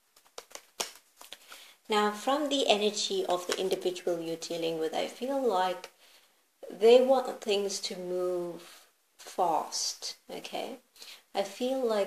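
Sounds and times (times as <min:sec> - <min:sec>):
cards clicking: 0:00.1 - 0:01.5
woman's voice: 0:01.9 - 0:05.9, 0:06.6 - 0:12.0.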